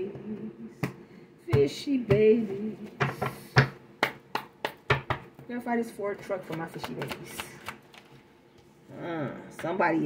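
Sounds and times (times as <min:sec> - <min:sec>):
cards being shuffled: 0:06.5 - 0:08.2.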